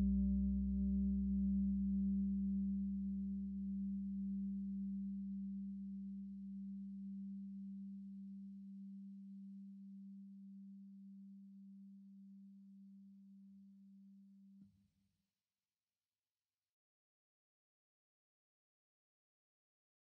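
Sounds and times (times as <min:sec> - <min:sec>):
low held music tone: 0:00.0 - 0:13.4.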